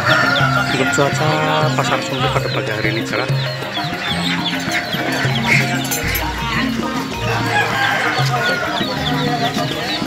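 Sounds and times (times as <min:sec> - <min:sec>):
rooster crowing: 0:00.0 - 0:02.2, 0:03.7 - 0:09.3
birds chirping: 0:00.0 - 0:10.0.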